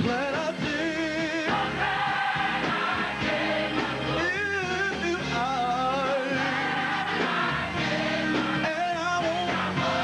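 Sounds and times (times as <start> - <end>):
man singing lead into microphone: 0.0 - 1.7, 4.2 - 6.5, 8.6 - 10.0
live band playing: 0.0 - 10.0
gospel choir singing: 0.2 - 10.0.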